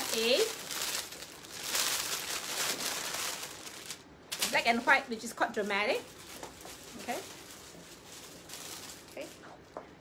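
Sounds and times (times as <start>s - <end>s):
shawl rustling: 0.0s - 4.8s.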